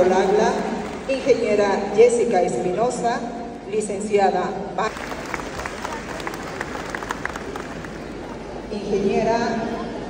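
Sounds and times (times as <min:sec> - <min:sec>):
audience applauding: 0:00.0 - 0:01.5, 0:04.9 - 0:08.4.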